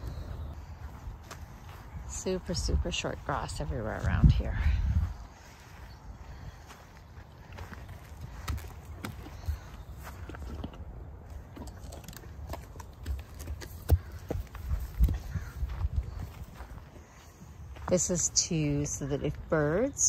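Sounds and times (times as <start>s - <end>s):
footsteps on grass: 0.0s - 11.4s, 13.2s - 19.9s
horse grazing: 0.0s - 20.0s.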